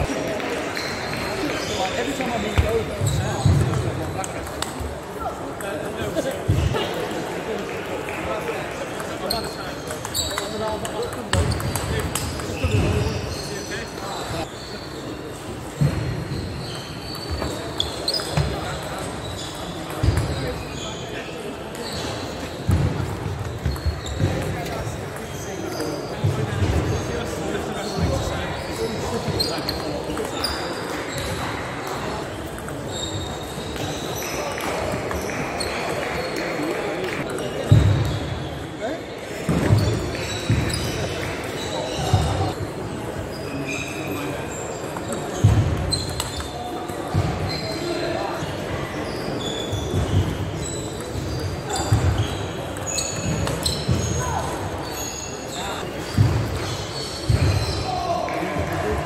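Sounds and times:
hubbub of voices: 0.0s - 59.0s.

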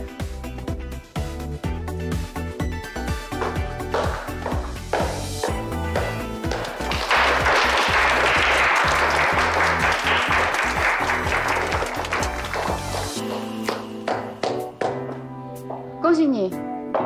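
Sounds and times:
background music: 0.0s - 17.0s
people applauding: 6.1s - 14.6s.

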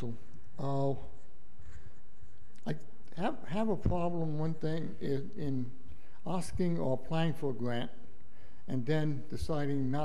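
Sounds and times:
man speaking: 0.0s - 1.3s, 2.6s - 10.0s
low room noise: 0.0s - 10.0s.

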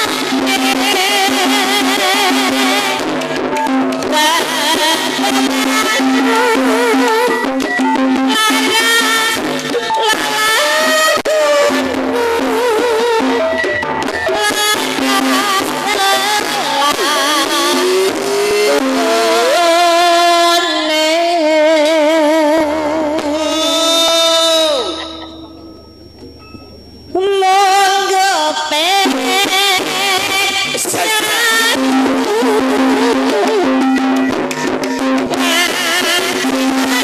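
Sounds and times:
woman singing through a microphone: 0.0s - 25.4s, 27.1s - 37.0s
hand drums: 0.0s - 27.4s, 28.9s - 37.0s
struck metallophone strikes: 0.1s - 20.2s, 22.6s - 37.0s
gamelan: 0.2s - 20.8s, 23.2s - 28.2s
metallophones struck with mallets: 23.2s - 27.4s
kettle gongs ringing: 24.8s - 27.6s.

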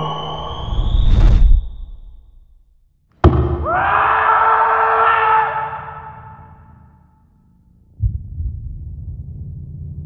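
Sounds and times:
whistle-like tone: 0.0s - 2.4s.

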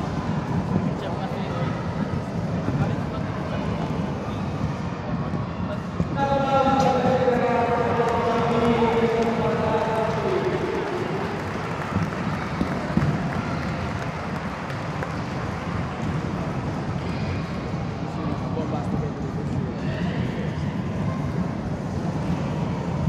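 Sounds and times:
children's voices echoing: 6.2s - 14.2s.

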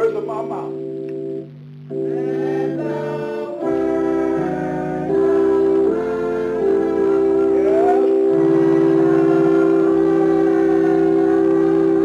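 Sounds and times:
church organ chord: 0.0s - 12.0s
organ bass note: 0.0s - 12.0s.

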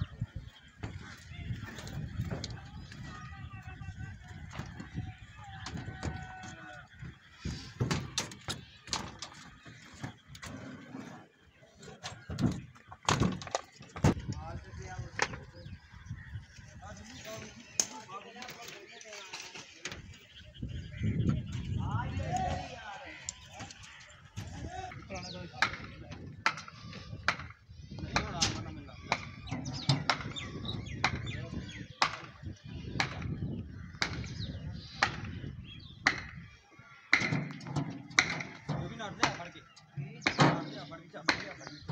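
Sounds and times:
people talking: 0.0s - 8.8s, 14.0s - 16.0s, 16.7s - 27.2s, 27.8s - 33.4s, 38.6s - 41.9s
knocks and clanks of hand work: 37.1s - 41.9s.

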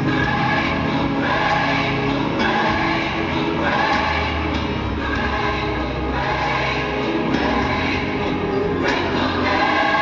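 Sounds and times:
choir singing music: 0.0s - 10.0s.

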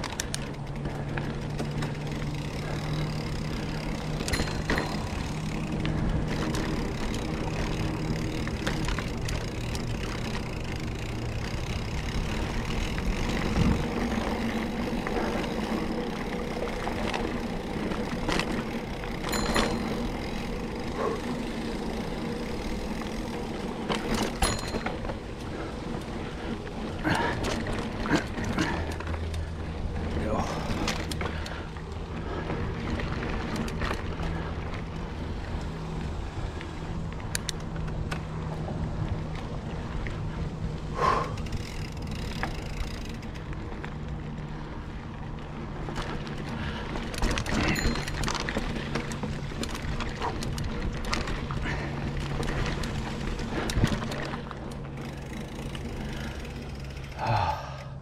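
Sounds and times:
chain and frame rattle: 0.0s - 16.0s, 16.9s - 25.7s, 46.5s - 57.1s
bike tyres rolling on dirt: 0.0s - 57.8s.

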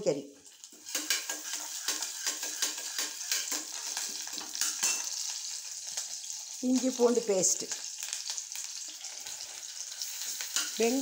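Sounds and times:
food sizzling in hot oil: 0.0s - 11.0s
utensil scraping a pan: 0.8s - 5.1s.

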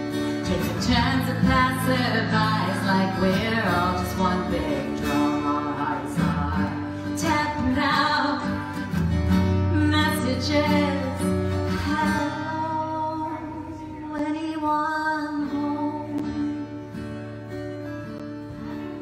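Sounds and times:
woman singing: 0.0s - 16.9s
guitar accompaniment: 0.0s - 19.0s.

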